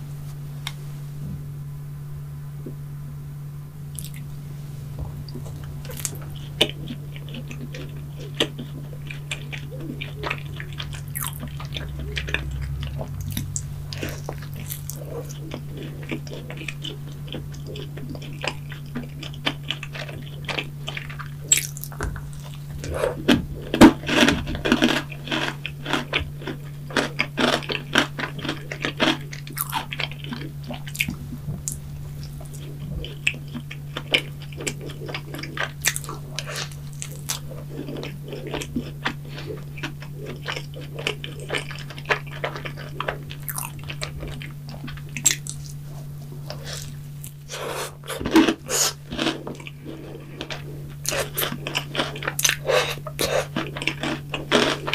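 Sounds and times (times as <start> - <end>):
steady low hum: 0.0 - 54.9
chewing and mouth smacks: 3.9 - 4.3, 5.0 - 54.9.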